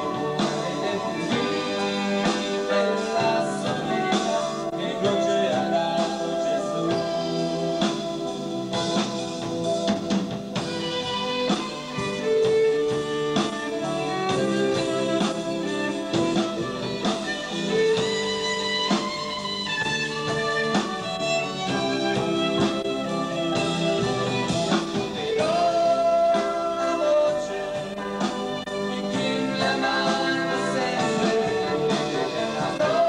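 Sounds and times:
man singing: 0:00.0 - 0:08.2, 0:24.9 - 0:28.3, 0:29.1 - 0:33.0
drum kit: 0:00.0 - 0:33.0
keyboard: 0:00.0 - 0:33.0.

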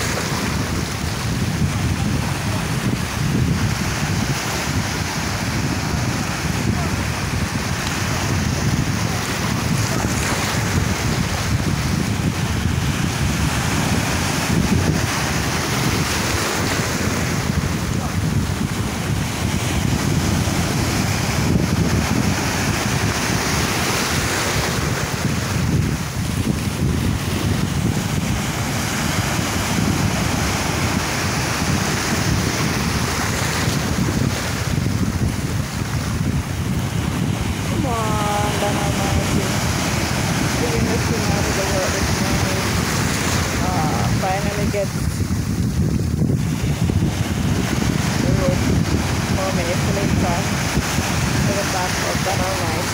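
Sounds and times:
wind buffeting microphone: 0:00.0 - 0:52.9.

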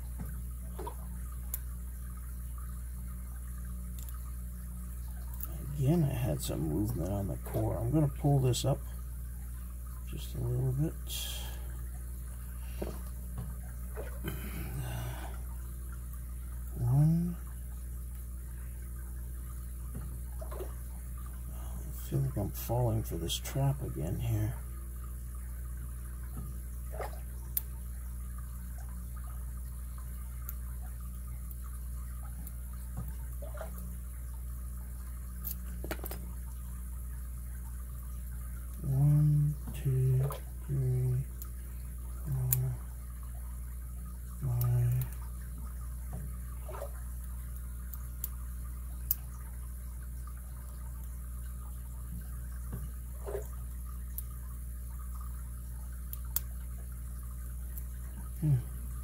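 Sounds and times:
steady low hum: 0:00.0 - 0:59.0
person humming: 0:58.4 - 0:58.8.

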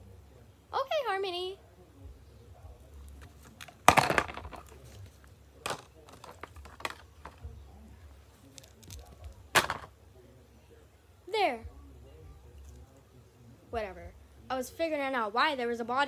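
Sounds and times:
objects knocking against plastic tub: 0:03.5 - 0:04.8, 0:05.6 - 0:07.5, 0:09.5 - 0:09.9.

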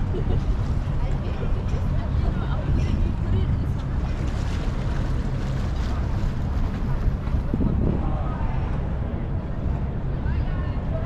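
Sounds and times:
faint voices of passers-by: 0:00.0 - 0:11.0
wind buffeting microphone: 0:00.0 - 0:11.0.

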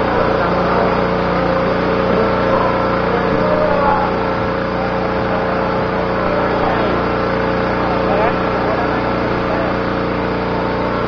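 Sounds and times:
faint voices: 0:00.0 - 0:11.0
steady mechanical hum: 0:00.0 - 0:11.0.

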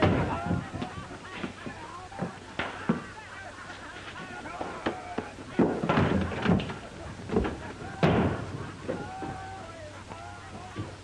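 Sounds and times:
scuffle thumps and knocks: 0:00.0 - 0:03.1, 0:04.5 - 0:09.5.

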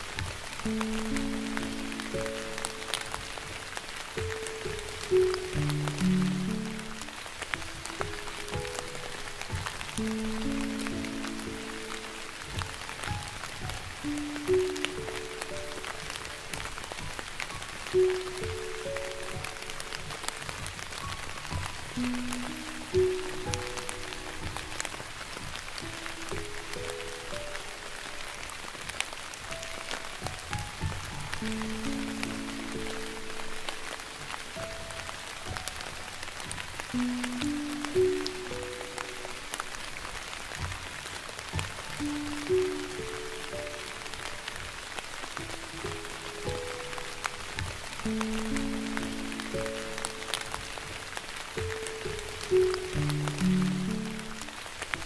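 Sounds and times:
light rain falling: 0:00.0 - 0:55.0
slow soft piano music: 0:00.0 - 0:55.0.

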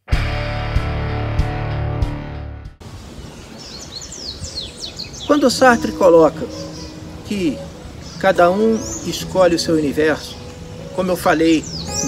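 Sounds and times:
outdoor background noise: 0:02.8 - 0:12.0
small birds chirping: 0:02.8 - 0:12.0.

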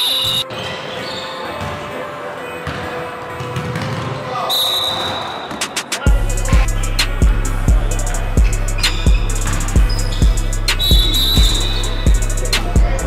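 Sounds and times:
sneaker squeaks: 0:00.0 - 0:06.0, 0:08.5 - 0:12.2
players calling out: 0:04.1 - 0:13.0.

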